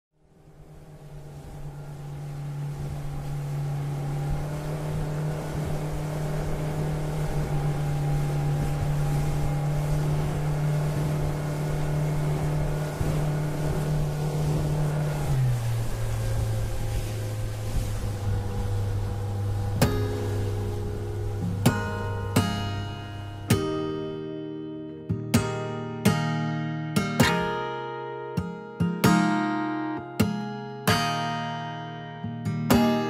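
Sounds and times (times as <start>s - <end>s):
motorboat engine running: 0.2s - 24.3s
acoustic guitar strum: 21.4s - 33.0s.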